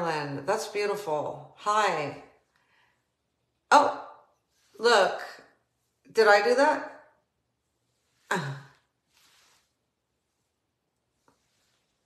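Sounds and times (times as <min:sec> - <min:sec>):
faint breath: 0:02.5 - 0:03.2.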